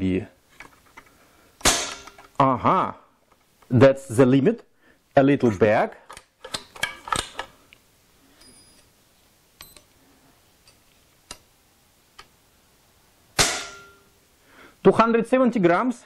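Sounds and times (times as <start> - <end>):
air rifle metallic clicks: 6.1 - 7.8.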